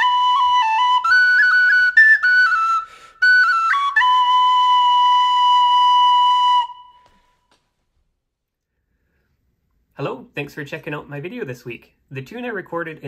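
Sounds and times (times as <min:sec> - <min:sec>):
tin whistle playing a jig: 0:00.0 - 0:07.3.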